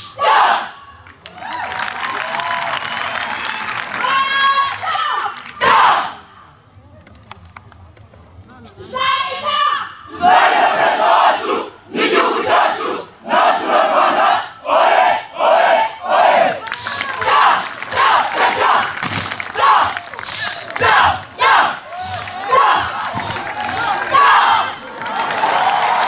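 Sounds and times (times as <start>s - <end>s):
soldiers shouting in unison: 0.0s - 0.8s, 4.0s - 6.2s, 9.0s - 26.0s.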